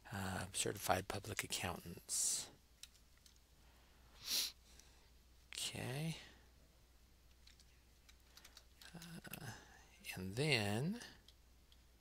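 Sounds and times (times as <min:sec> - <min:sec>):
faint keyboard keystrokes: 0:02.8 - 0:03.4, 0:07.3 - 0:09.5.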